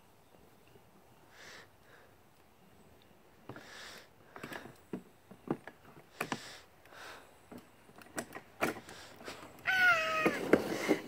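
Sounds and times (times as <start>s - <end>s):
ride-on car rolling on plastic track: 7.6s - 11.0s
child's high squeal: 9.7s - 10.5s.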